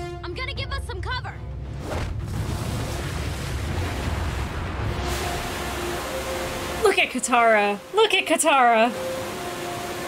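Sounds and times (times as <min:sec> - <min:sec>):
deep rumble: 0:01.3 - 0:06.8.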